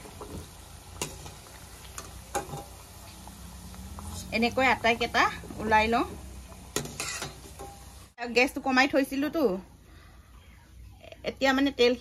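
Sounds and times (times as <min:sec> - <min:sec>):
oil sizzling: 0:00.0 - 0:09.6
metal spoon clinking on pan: 0:02.0 - 0:02.8, 0:06.7 - 0:07.9.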